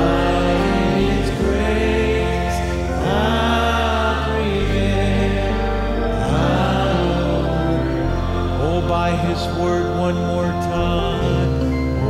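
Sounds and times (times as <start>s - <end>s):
man singing slowly: 0.0s - 12.0s
sustained keyboard chords: 0.0s - 12.0s.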